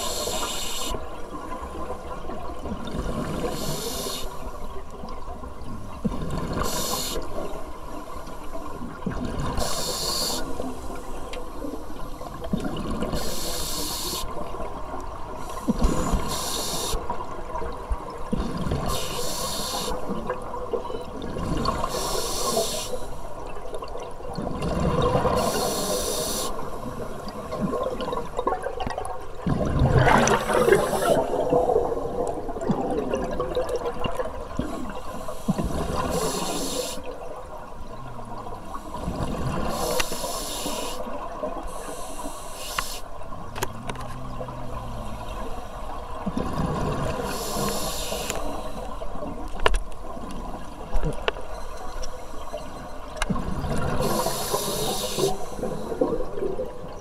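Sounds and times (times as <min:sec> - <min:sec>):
regulator hiss on inhalation: 0:00.0 - 0:01.0, 0:03.5 - 0:04.4, 0:06.6 - 0:07.3, 0:09.6 - 0:10.6, 0:13.2 - 0:14.3, 0:15.5 - 0:17.0, 0:18.9 - 0:20.0, 0:21.9 - 0:23.2, 0:25.4 - 0:26.7, 0:35.0 - 0:37.0, 0:39.7 - 0:41.1, 0:41.7 - 0:43.1, 0:47.2 - 0:49.0, 0:54.0 - 0:56.0
exhaled air bubbling: 0:23.4 - 0:42.4, 0:43.2 - 0:57.0.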